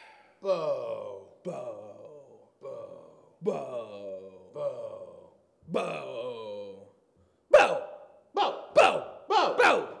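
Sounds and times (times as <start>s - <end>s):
man's drawn-out vocal sound: 0.0s - 7.1s.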